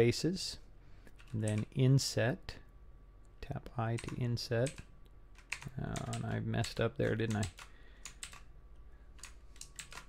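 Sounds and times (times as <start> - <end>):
keyboard keys clicking: 7.2 - 8.4, 9.2 - 10.0.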